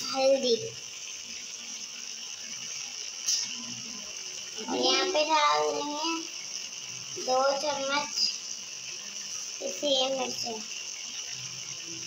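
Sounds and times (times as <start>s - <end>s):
oil sizzling in a pan: 0.0s - 12.0s.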